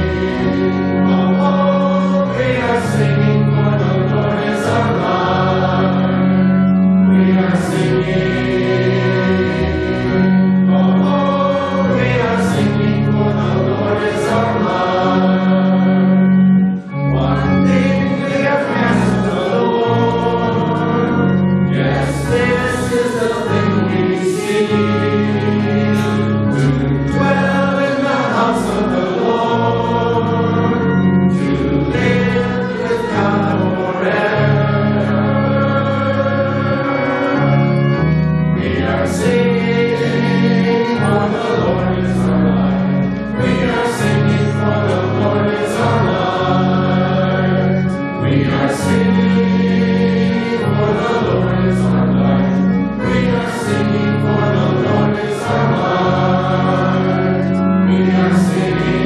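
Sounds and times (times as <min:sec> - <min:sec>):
congregation singing a hymn: 0:00.0 - 0:59.0
sustained low instrumental chords: 0:00.0 - 0:59.0.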